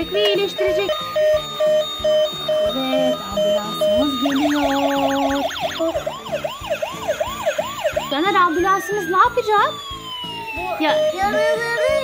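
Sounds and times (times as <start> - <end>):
simple electronic tune: 0.0 - 12.0
toy electronic siren wailing: 0.0 - 12.0.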